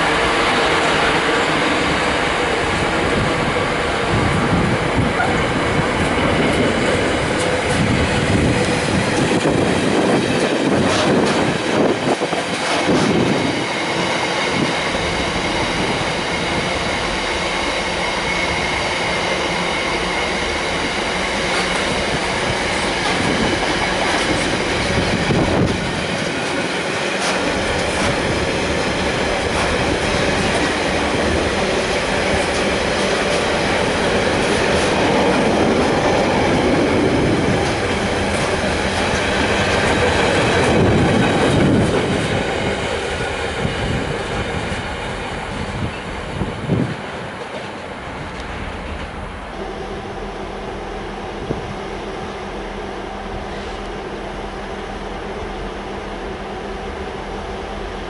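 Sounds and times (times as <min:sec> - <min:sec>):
freight train wagons rolling past: 0:00.0 - 0:58.0.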